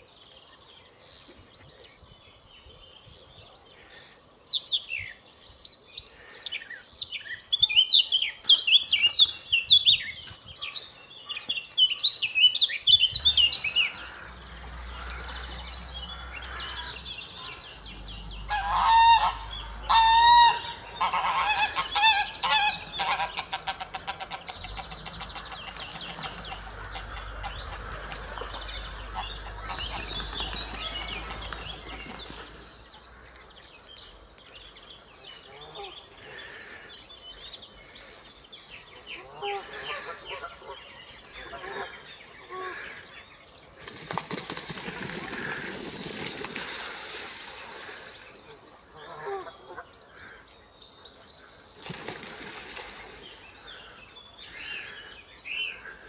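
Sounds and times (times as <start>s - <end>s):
geese honking: 18.4s - 30.1s.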